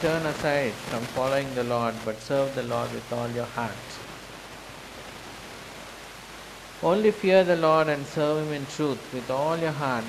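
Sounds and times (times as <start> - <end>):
man speaking: 0.0 - 4.1, 6.8 - 10.0
background hiss: 0.0 - 10.0.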